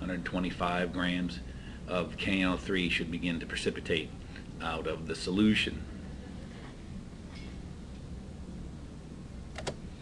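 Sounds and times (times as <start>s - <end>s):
recording hum and hiss: 0.0s - 10.0s
computer mouse click: 9.5s - 9.8s.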